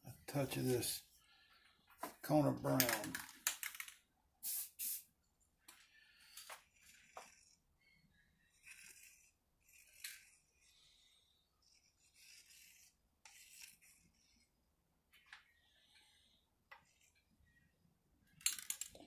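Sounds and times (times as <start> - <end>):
hand smoothing wet epoxy: 8.6 - 14.5.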